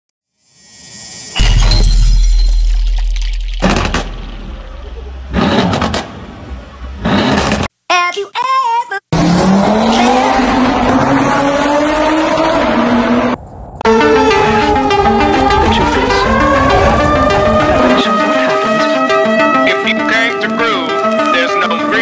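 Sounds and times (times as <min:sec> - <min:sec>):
sharp hits: 0:00.6 - 0:06.3
deep bass boom: 0:01.4 - 0:05.4
car engine accelerating: 0:03.8 - 0:07.7, 0:09.1 - 0:19.6
wavering pitched sound: 0:13.8 - 0:21.6.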